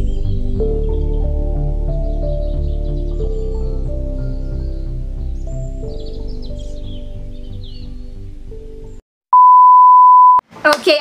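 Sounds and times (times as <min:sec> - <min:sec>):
test-tone beep: 0:09.3 - 0:10.4.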